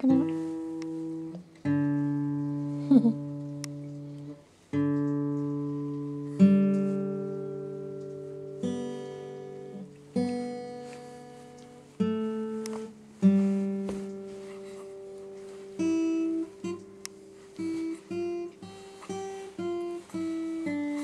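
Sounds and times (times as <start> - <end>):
acoustic guitar chords strummed: 0.0 - 21.0.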